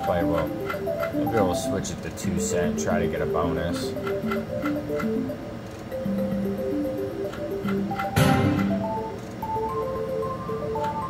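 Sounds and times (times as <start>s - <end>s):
reels ticking: 0.0s - 9.4s
slot machine melody: 0.0s - 11.0s.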